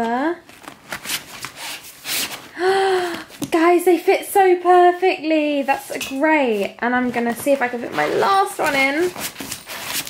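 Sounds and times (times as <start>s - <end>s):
folder scraping against fabric bag: 7.2s - 10.0s.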